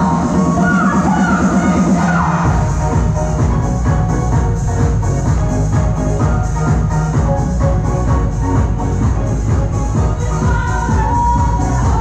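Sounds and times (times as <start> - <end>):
electronic dance music: 0.0 - 12.0
heavy bass: 0.0 - 12.0.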